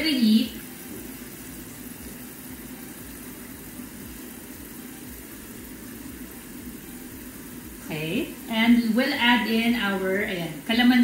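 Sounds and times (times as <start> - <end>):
gas burner humming and hissing: 0.0 - 11.0.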